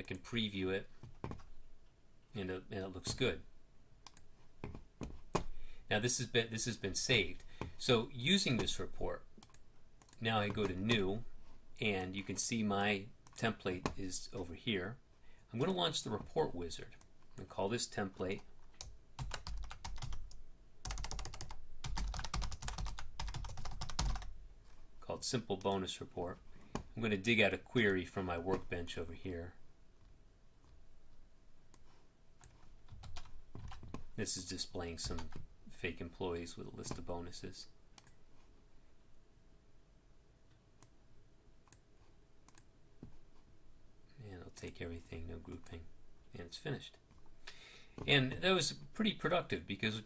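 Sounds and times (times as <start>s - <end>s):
computer mouse clicks: 4.0s - 5.5s, 9.4s - 10.8s, 38.0s - 38.2s, 42.5s - 43.2s
typing on computer keyboard: 18.8s - 24.3s, 32.4s - 34.0s.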